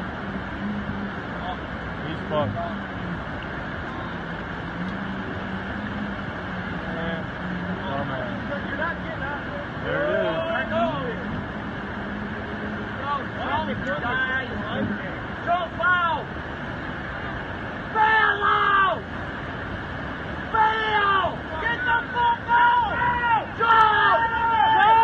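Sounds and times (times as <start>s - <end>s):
water rushing over dam: 0.0s - 25.0s
people shouting: 17.9s - 19.0s, 20.5s - 25.0s.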